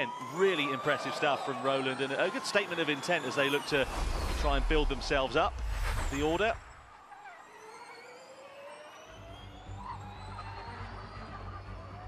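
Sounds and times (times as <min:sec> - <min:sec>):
electric race car whine: 0:00.0 - 0:12.0.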